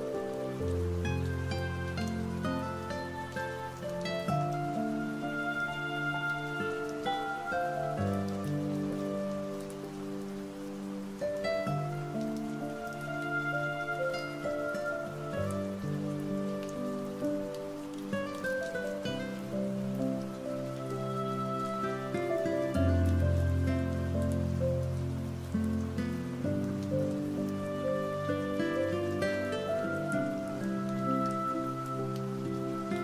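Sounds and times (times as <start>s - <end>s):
falling rain: 0.0s - 33.0s
soft relaxation music: 0.0s - 33.0s.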